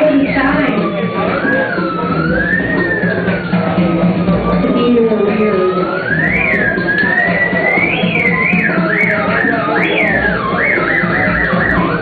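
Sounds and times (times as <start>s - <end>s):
low electronic backing: 0.0s - 12.0s
theremin gliding melody: 0.0s - 12.0s.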